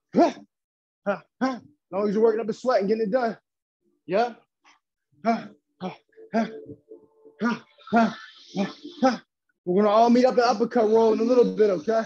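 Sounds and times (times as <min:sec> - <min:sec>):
man grunting: 0:05.2 - 0:06.6.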